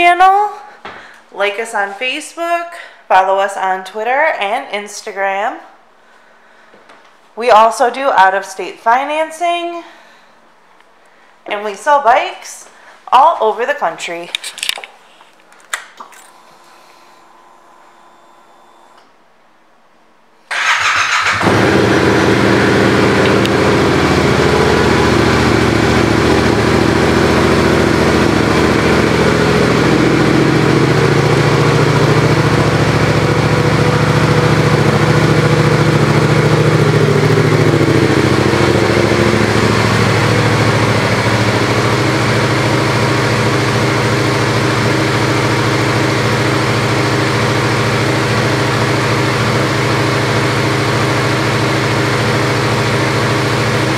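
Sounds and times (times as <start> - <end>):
motorcycle engine starting and idling: 20.5 - 53.9.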